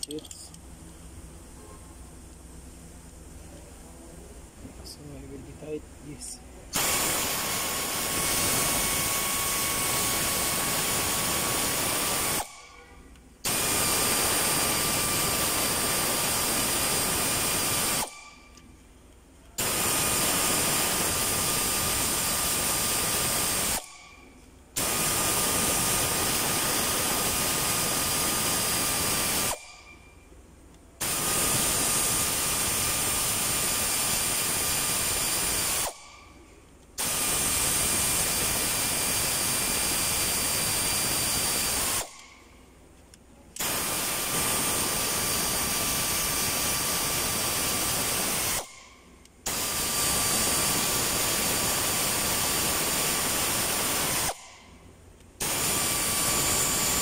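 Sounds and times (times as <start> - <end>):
air ratchet hiss and whine: 0.0 - 0.6, 4.8 - 18.8, 19.5 - 30.3, 31.0 - 42.8, 43.6 - 57.0.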